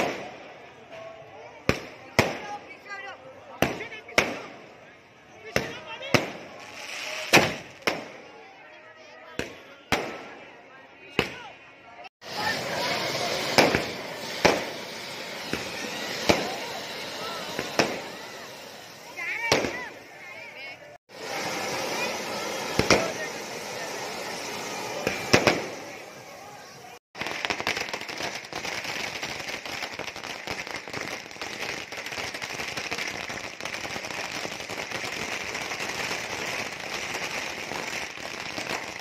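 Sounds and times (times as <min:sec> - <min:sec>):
firecracker bangs: 0:00.0 - 0:00.5, 0:05.5 - 0:08.3, 0:12.2 - 0:20.0, 0:21.1 - 0:26.0
fireworks bangs with echo: 0:00.0 - 0:08.4, 0:09.3 - 0:11.5, 0:12.2 - 0:39.0.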